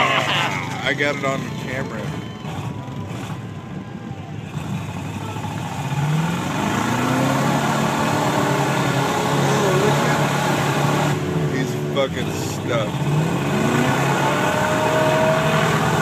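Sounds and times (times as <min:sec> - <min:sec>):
pickup truck engine revving: 0:00.0 - 0:16.0.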